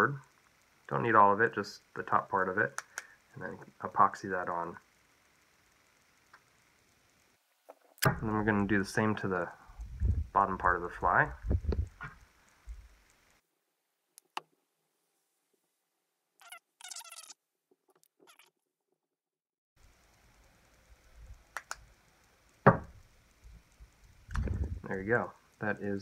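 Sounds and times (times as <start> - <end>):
faint clicks: 2.7 - 3.7, 19.8 - 25.9
short high squeak: 16.4 - 17.4
sharp knock: 22.7 - 22.9.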